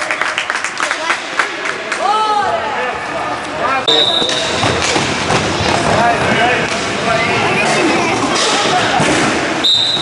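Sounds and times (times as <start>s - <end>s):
referee's whistle blast: 3.9s - 4.5s, 9.6s - 10.0s.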